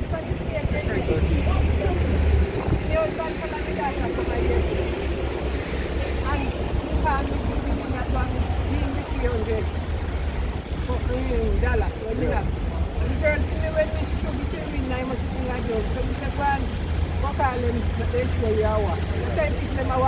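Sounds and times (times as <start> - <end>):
people talking: 0.0 - 4.9, 6.2 - 9.7, 10.8 - 20.0
bus engine rumble: 0.0 - 20.0.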